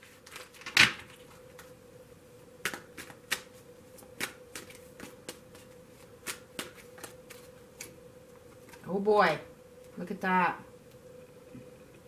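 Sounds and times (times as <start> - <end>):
cards being shuffled: 0.0 - 1.7, 2.6 - 8.8
faint steady hum: 0.0 - 12.0.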